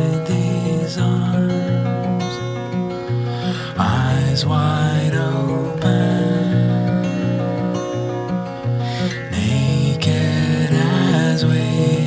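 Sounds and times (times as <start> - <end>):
plucked acoustic guitar: 0.0 - 12.0.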